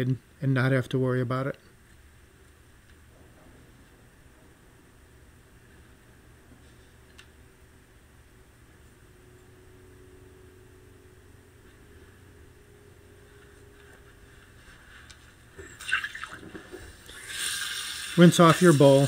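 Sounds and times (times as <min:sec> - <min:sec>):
tap water running into sink: 0:15.8 - 0:19.0.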